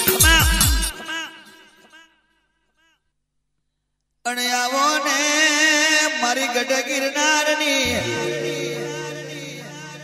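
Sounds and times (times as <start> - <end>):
song ending notes: 7.8 - 10.0.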